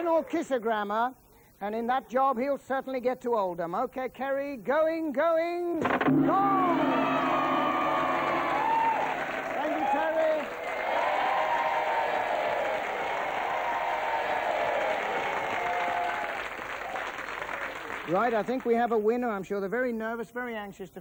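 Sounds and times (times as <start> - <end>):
people shouting and cheering: 5.8 - 16.4
audience applauding: 5.8 - 18.7.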